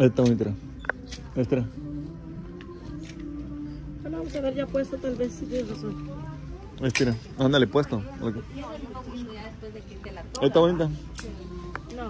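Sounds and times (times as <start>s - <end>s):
background music with sustained notes: 0.0s - 12.0s.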